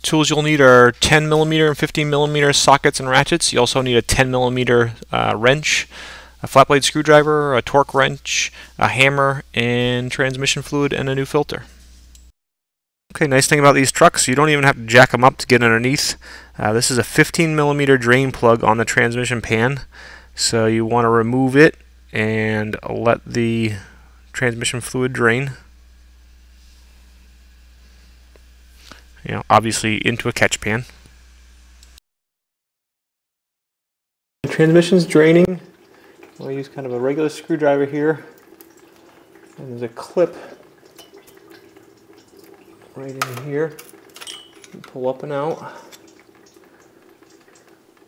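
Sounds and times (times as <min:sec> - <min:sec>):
low electrical hum: 0:00.0 - 0:12.3, 0:13.1 - 0:32.0, 0:34.4 - 0:48.0
faint hiss: 0:04.5 - 0:09.8
fluid dripping into a pan: 0:35.2 - 0:48.0.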